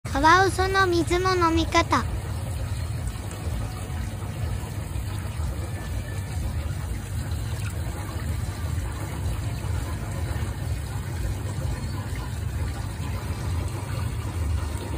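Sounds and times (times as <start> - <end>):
faint running water: 0.1 - 14.9.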